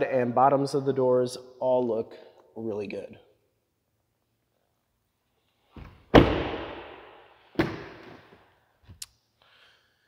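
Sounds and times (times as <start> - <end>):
truck door slamming: 5.8 - 6.9.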